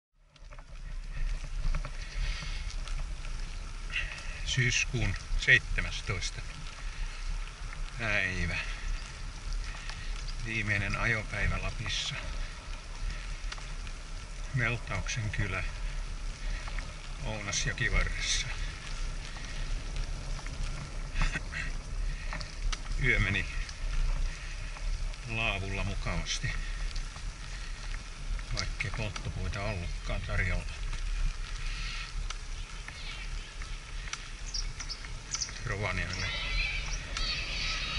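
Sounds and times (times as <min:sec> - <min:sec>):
bicycle rolling on pavement: 0:00.1 - 0:37.9
wind rumbling on microphone: 0:00.2 - 0:37.9
faint clicks: 0:00.3 - 0:37.9.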